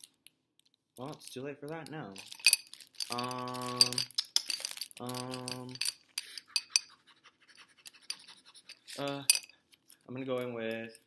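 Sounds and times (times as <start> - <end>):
makeup items clicking and clinking: 0.0 - 7.0, 7.8 - 11.0.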